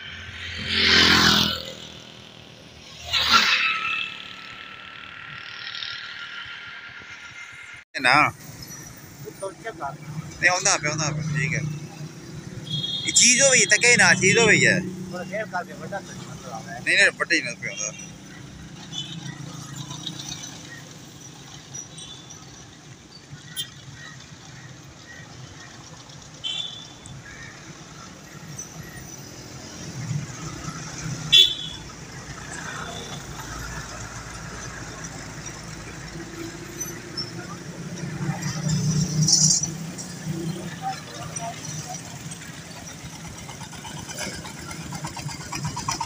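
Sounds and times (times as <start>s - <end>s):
vehicle passing close: 0.0s - 7.7s
vehicle engines running: 0.0s - 46.0s.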